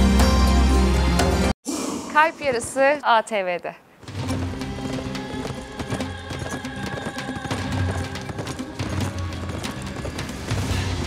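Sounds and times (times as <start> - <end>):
background music with low notes: 0.0 - 1.6
galloping horses hoofbeats: 4.0 - 11.0.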